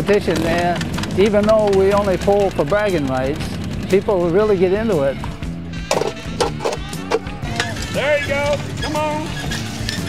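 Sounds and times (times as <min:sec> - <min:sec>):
background music: 0:00.0 - 0:10.0
bricks knocking on metal: 0:05.9 - 0:07.7.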